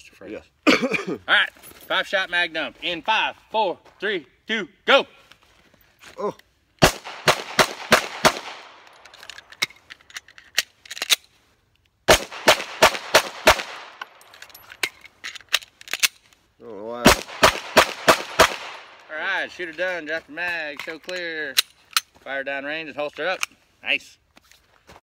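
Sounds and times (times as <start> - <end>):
pistol shots: 6.8 - 9.0, 12.1 - 14.2, 17.0 - 19.1.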